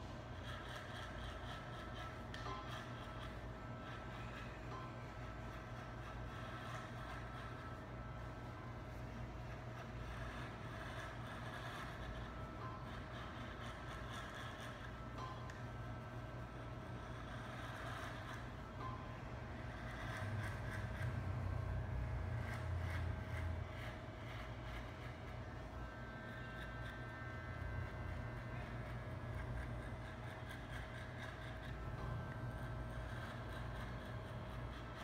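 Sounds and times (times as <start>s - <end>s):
electric hair clipper cutting hair: 0.4s - 35.0s.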